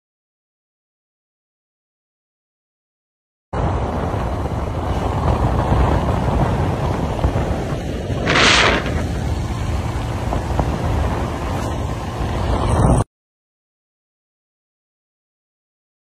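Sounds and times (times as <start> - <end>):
wind rushing over microphone: 3.6 - 13.1.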